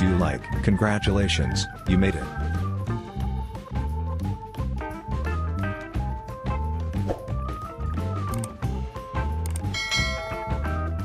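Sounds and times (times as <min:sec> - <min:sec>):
background music with low beat: 0:00.0 - 0:11.0
bell-like notification chime: 0:09.8 - 0:11.0.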